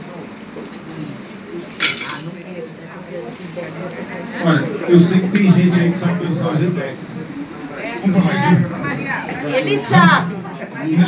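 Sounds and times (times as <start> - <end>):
murmur of voices: 0.0 - 11.0
glass clinking: 1.8 - 2.3.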